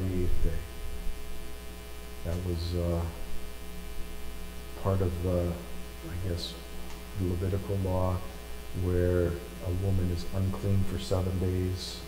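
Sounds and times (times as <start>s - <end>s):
man speaking: 0.0s - 0.7s, 2.2s - 3.3s, 4.8s - 6.6s, 7.2s - 12.0s
electrical mains hum: 0.0s - 12.0s.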